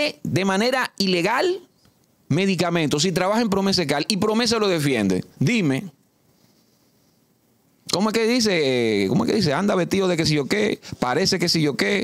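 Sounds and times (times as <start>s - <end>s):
man speaking: 0.0s - 1.7s, 2.3s - 6.0s, 7.9s - 12.0s.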